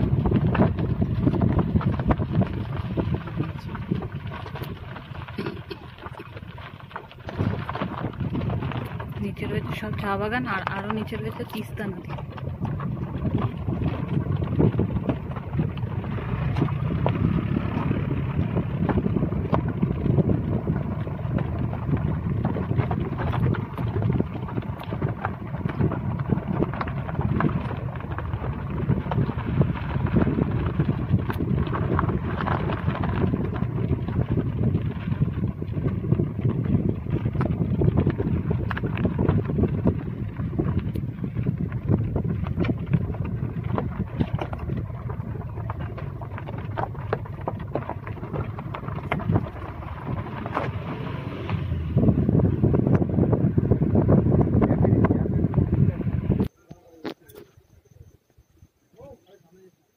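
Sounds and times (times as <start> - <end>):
wind buffeting microphone: 0.0 - 56.5.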